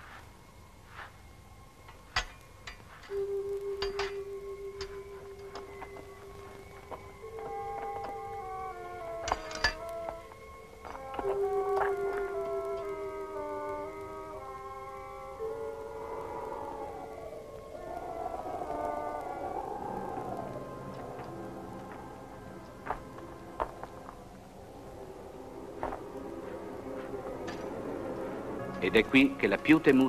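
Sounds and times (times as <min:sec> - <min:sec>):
orchestral film music: 0:00.3 - 0:30.0.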